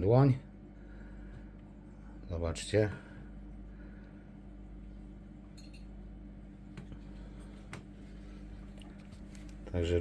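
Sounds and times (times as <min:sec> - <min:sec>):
aquarium equipment humming: 0:00.0 - 0:10.0.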